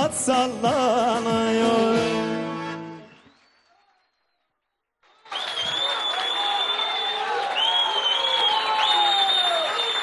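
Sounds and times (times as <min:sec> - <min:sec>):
studio audience applause: 0:03.0 - 0:10.0
high steady whistle: 0:05.3 - 0:10.0.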